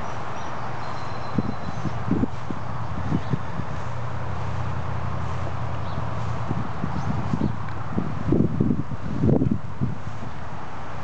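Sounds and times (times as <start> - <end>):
distant traffic hum: 0.0 - 11.0
footsteps through dry grass: 1.4 - 10.6.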